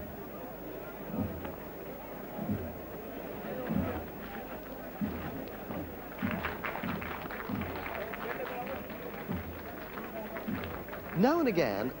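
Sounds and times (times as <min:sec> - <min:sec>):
drum beating deep thumps: 0:01.1 - 0:01.5.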